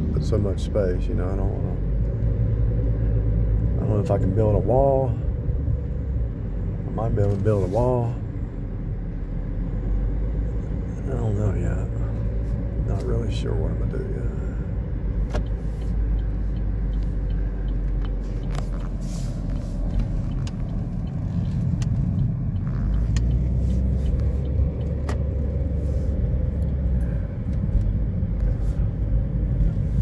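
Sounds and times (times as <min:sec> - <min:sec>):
car engine and road rumble: 0:00.0 - 0:30.0.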